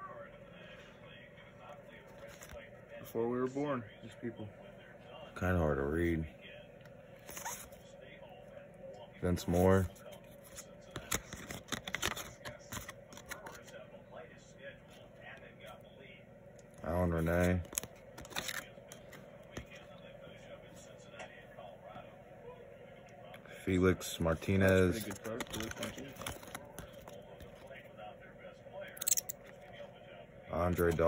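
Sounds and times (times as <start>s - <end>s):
cards sliding against each other: 2.1s - 2.6s, 10.3s - 13.7s, 17.2s - 19.7s, 24.6s - 27.6s.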